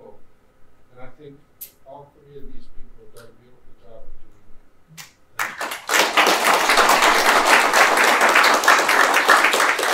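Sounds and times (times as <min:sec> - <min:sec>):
audience applause: 0:05.4 - 0:09.9.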